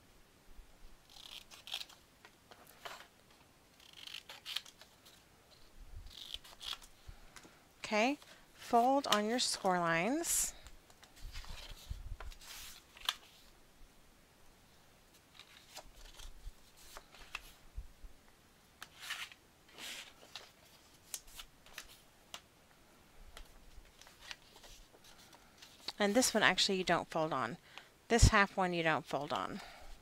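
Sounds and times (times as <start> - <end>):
paper rustling: 11.0 - 13.5, 18.8 - 22.0, 23.4 - 26.4.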